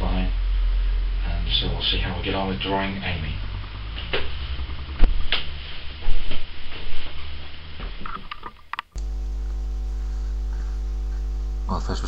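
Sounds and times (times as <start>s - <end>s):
low rumble: 0.0s - 6.5s
electrical mains hum: 0.0s - 12.0s.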